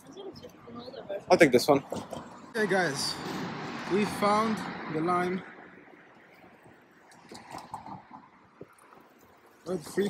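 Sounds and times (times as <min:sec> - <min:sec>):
faint street background noise: 0:00.0 - 0:10.0.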